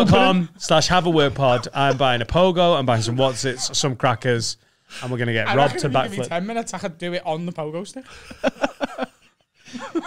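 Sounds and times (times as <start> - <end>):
men laughing: 1.3 - 2.2, 8.1 - 10.0.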